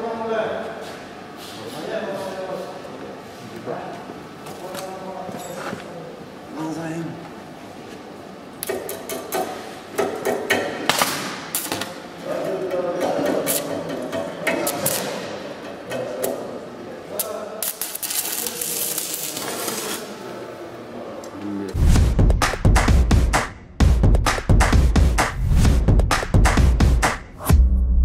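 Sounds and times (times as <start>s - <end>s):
sharp metal knocks: 8.7s - 11.4s
welding arc crackling: 17.2s - 20.0s.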